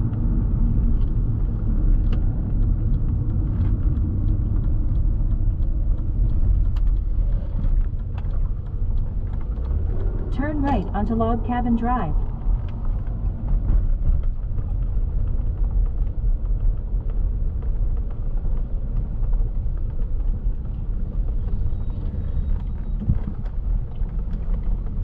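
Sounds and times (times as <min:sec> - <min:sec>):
tyre and engine rumble: 0:00.0 - 0:25.0.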